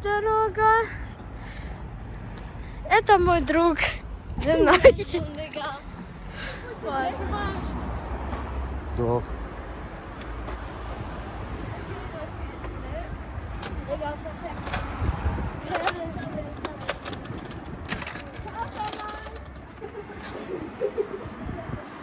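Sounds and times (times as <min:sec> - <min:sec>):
street traffic rumbling: 0:00.0 - 0:22.0.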